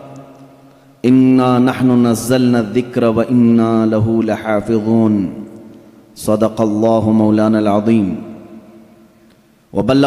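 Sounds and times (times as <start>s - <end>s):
man chanting through a microphone: 1.0s - 5.4s.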